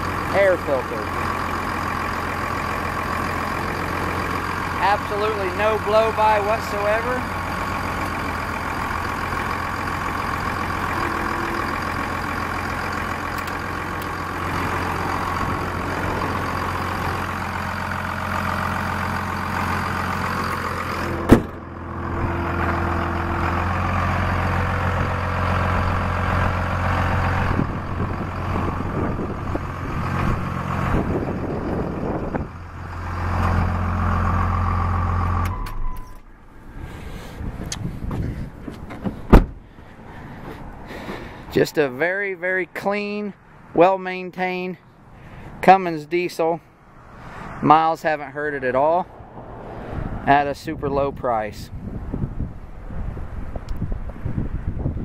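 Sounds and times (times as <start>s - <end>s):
diesel engine idling: 0.0s - 55.0s
hood slamming shut: 21.0s - 21.8s, 38.1s - 39.7s.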